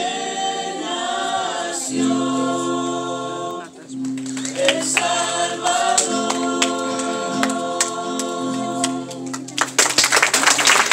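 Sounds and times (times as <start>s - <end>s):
choir singing a hymn: 0.0s - 9.5s.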